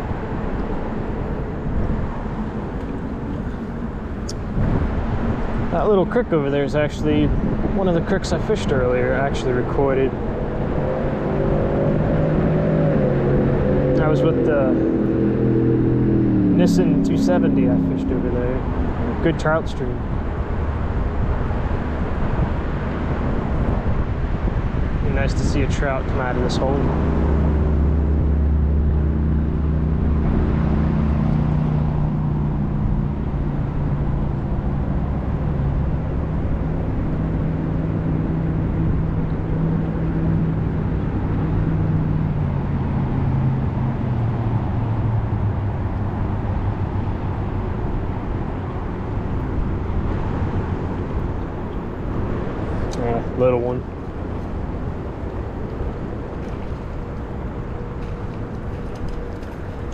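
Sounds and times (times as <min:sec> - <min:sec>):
traffic rumble: 0:00.0 - 0:59.9
vehicle engine passing: 0:00.0 - 0:59.9.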